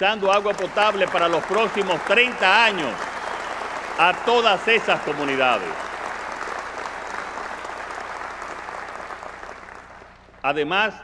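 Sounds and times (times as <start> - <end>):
large audience applauding: 0.0 - 10.4.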